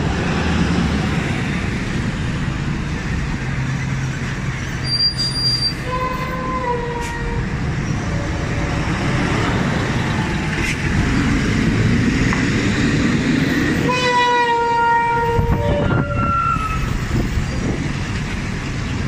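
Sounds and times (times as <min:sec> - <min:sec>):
buses and traffic passing: 0:00.0 - 0:19.0
vehicle horn: 0:05.8 - 0:07.4, 0:13.8 - 0:16.8.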